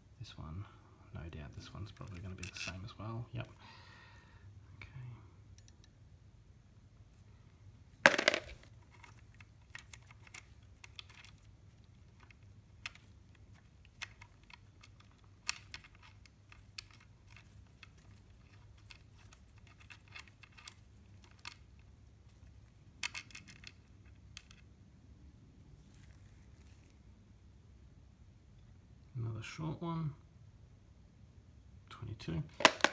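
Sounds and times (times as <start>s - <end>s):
light metallic clicks and taps: 5.6s - 6.0s.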